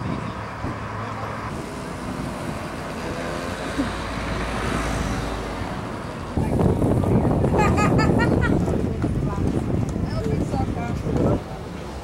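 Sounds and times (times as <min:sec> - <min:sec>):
outdoor background noise: 0:00.0 - 0:12.0
road traffic: 0:00.0 - 0:12.0.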